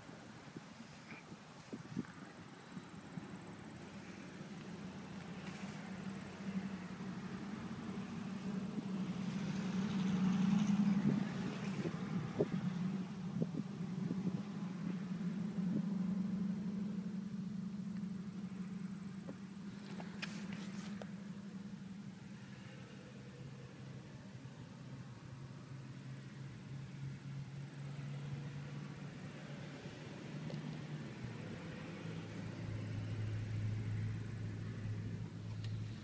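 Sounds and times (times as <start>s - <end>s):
diesel engine idling: 2.4s - 29.1s.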